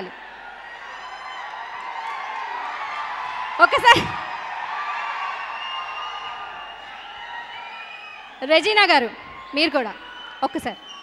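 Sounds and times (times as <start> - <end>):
audience cheering and whooping: 0.0 - 11.0.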